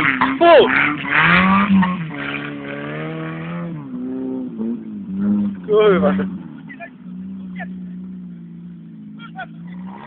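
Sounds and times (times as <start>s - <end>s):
distant buggy engine running: 0.0s - 10.0s.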